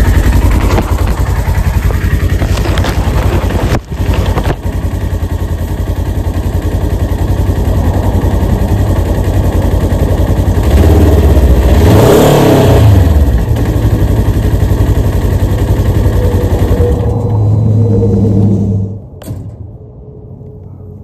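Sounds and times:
vehicle engine idling and revving: 0:00.0 - 0:19.3.

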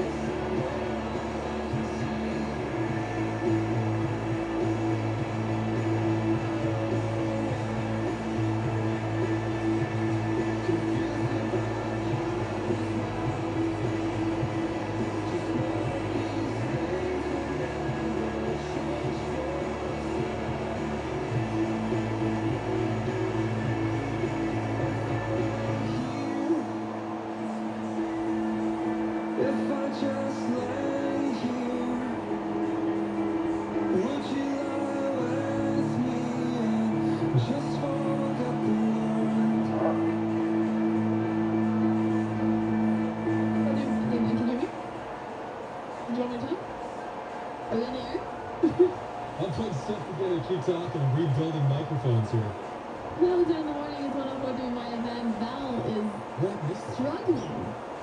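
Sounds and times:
pop music on radio: 0:00.0 - 0:58.0.

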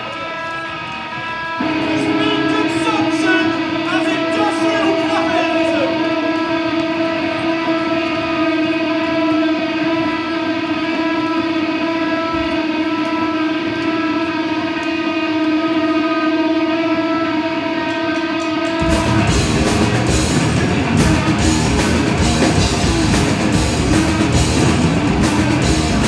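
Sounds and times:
electric guitar feedback: 0:00.0 - 0:26.0
full band playing: 0:01.6 - 0:12.9, 0:18.6 - 0:26.0.

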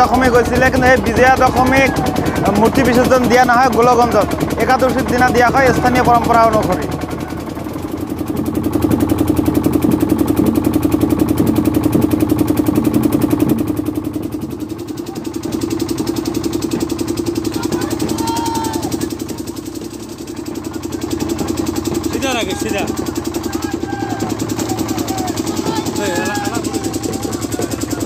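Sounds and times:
boat engine thudding: 0:00.0 - 0:28.0
voices calling: 0:00.0 - 0:28.0.

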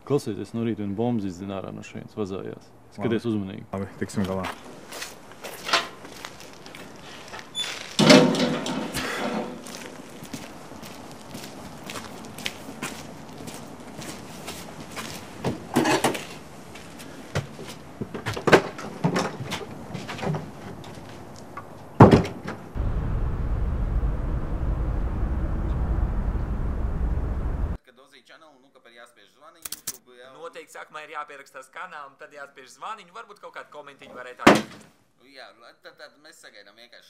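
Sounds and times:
metal gate clanging shut: 0:07.6 - 0:09.6
sharp bang: 0:22.8 - 0:27.8
steady low drone: 0:22.8 - 0:27.8.

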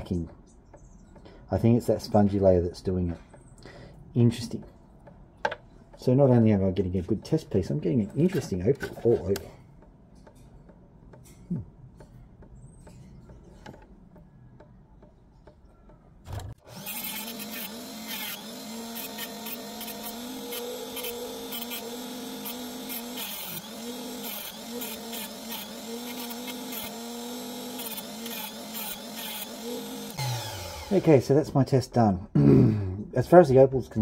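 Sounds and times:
rotary tool cutting stone: 0:16.4 - 0:31.1.

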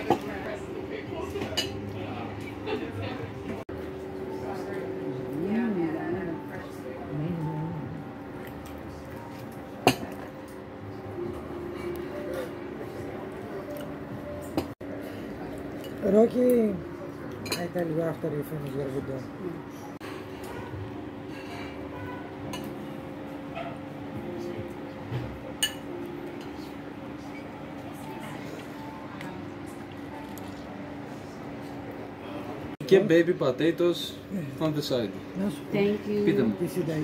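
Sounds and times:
tableware clink: 0:17.4 - 0:17.8, 0:21.3 - 0:22.8, 0:25.6 - 0:26.6.

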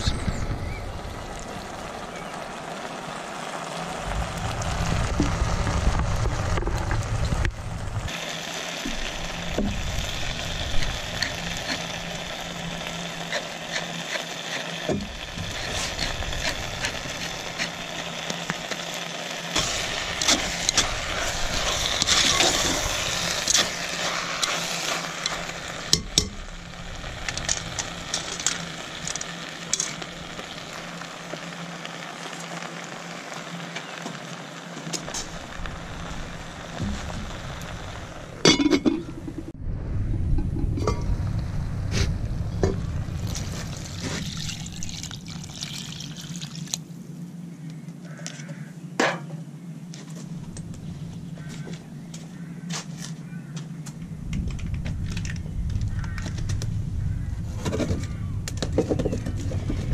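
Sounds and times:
vegetables sizzling in a pot: 0:00.1 - 0:39.5, 0:41.5 - 0:46.8
low rumble: 0:03.8 - 0:08.2, 0:19.6 - 0:31.2, 0:35.2 - 0:45.9, 0:53.2 - 0:59.9.

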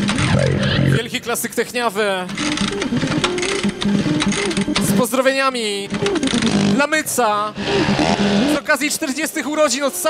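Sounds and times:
electronic dance music: 0:00.0 - 0:01.5, 0:06.1 - 0:10.0.

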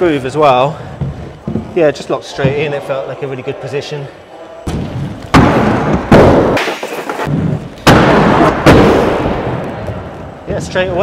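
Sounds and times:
skates grinding and rolling: 0:04.7 - 0:11.0
inline skates hitting a ledge: 0:04.8 - 0:09.0.

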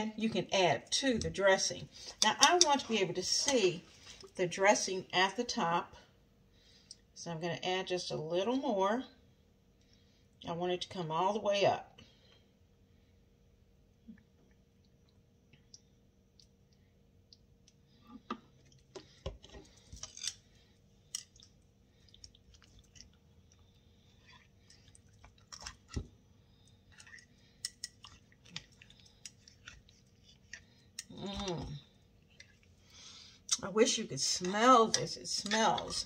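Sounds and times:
wet vegetables squishing: 0:21.0 - 0:36.0.

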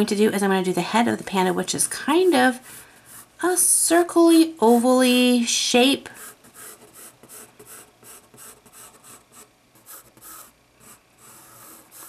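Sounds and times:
pencil sketching on paper: 0:06.2 - 0:12.0.

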